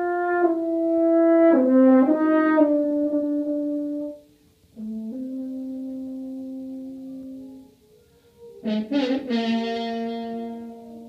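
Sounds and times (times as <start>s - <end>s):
french horn playing: 0.0s - 11.0s.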